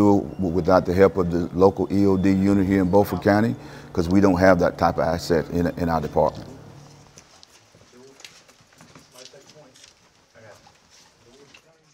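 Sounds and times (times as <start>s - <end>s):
boots walking on hard floor: 6.8s - 11.2s.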